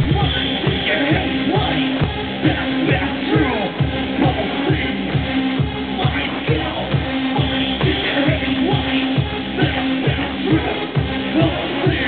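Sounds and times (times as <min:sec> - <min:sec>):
kick drum beating: 0:00.0 - 0:12.0.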